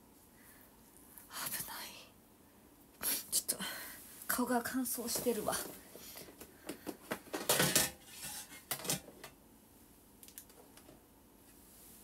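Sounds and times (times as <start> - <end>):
woman whispering: 1.2 - 2.2.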